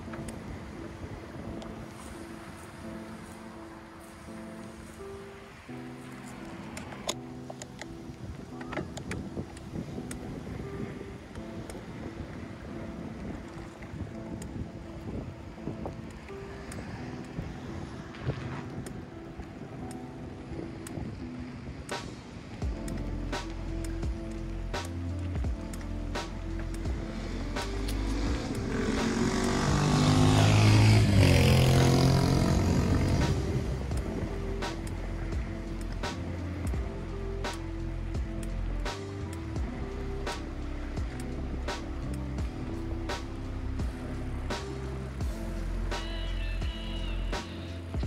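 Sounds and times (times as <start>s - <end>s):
faint music: 0.0s - 48.0s
wind buffeting microphone: 0.0s - 48.0s
sharp ticks: 21.9s - 45.0s
vehicle driving past: 28.0s - 33.9s.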